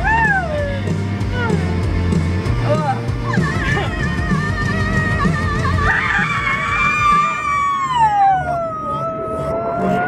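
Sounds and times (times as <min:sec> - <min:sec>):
pop-rock song on car stereo: 0:00.0 - 0:07.8.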